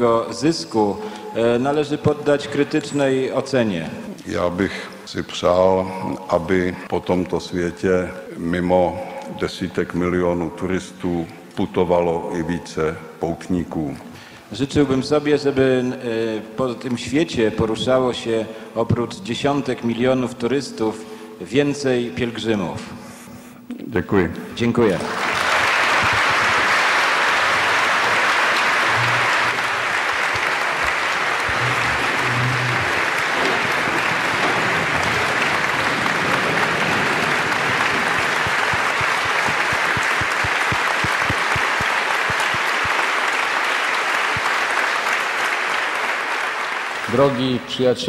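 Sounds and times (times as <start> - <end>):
audience applauding: 24.8 - 47.4.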